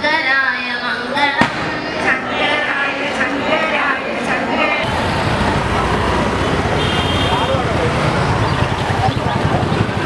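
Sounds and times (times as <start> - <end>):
voices: 0.0 - 10.0
firecracker bang: 1.4 - 2.0
people singing: 1.6 - 4.9.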